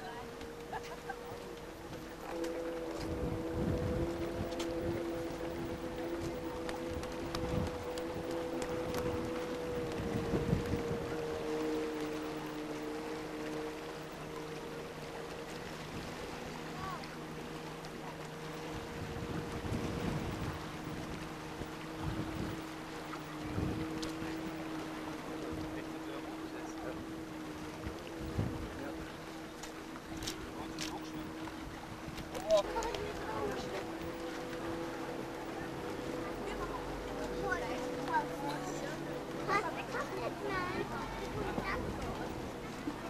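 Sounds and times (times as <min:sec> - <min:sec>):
droning hum of two tones: 0:00.0 - 0:43.0
wind buffeting microphone: 0:01.8 - 0:14.4, 0:15.0 - 0:43.0.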